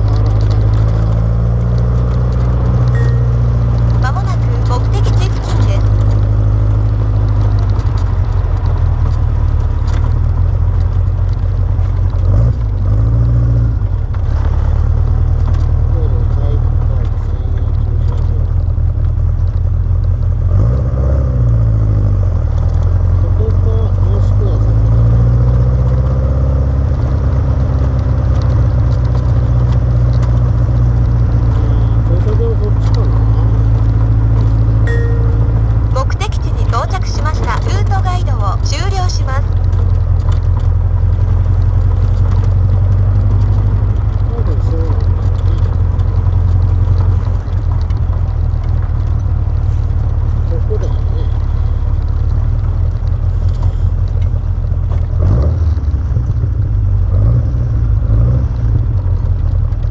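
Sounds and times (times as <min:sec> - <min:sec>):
sports car engine running: 0:00.0 - 0:59.9.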